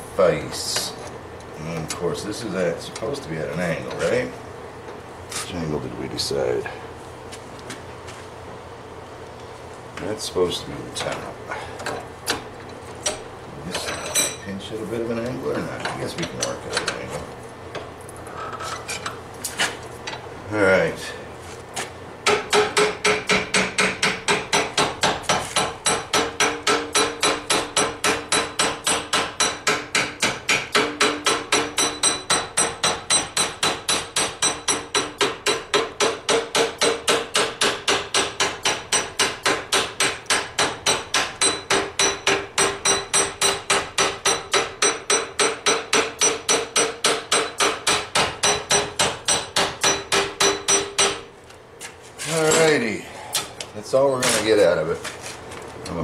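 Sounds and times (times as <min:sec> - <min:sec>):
hammer striking metal spike: 0:22.2 - 0:51.2.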